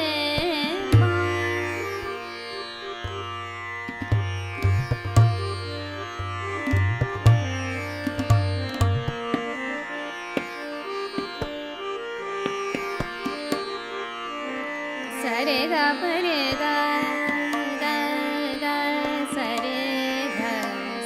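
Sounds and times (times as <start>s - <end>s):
tabla strokes: 0.0s - 2.2s, 3.0s - 9.6s, 10.3s - 11.6s, 12.4s - 13.8s
sustained harmonium notes: 0.0s - 21.0s
tanpura drone: 0.0s - 21.0s.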